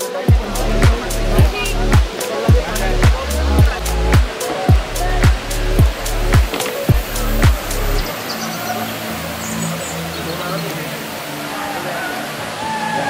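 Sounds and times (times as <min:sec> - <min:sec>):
held music notes: 0:00.0 - 0:12.6
deep falling bass kick: 0:00.3 - 0:08.0.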